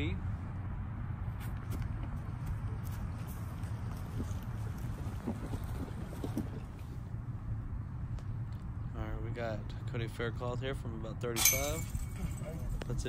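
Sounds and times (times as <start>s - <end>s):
wind noise on microphone: 1.2s - 8.6s.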